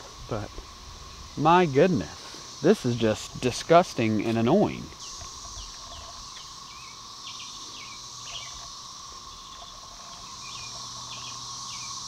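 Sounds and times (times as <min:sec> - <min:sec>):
cicada chorus drone: 0:00.0 - 0:12.0
bird chirps: 0:04.7 - 0:12.0.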